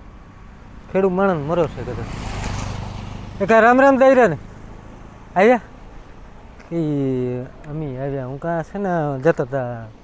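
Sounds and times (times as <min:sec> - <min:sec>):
motorcycle passing: 0:00.0 - 0:08.4
man speaking: 0:03.4 - 0:04.4, 0:05.4 - 0:05.7, 0:06.6 - 0:10.0.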